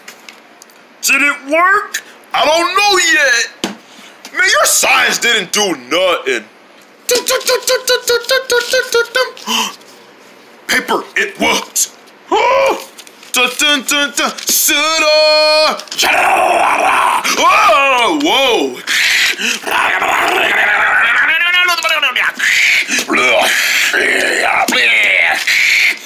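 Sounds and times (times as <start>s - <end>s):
person growling: 16.0s - 17.8s, 18.7s - 21.3s, 22.3s - 26.0s
high voice stuttering sound effect: 19.4s - 26.0s.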